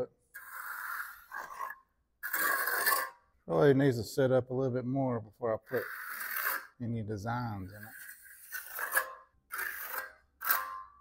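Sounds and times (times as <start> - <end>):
trowel scraping concrete: 0.3 - 3.3, 5.6 - 11.0.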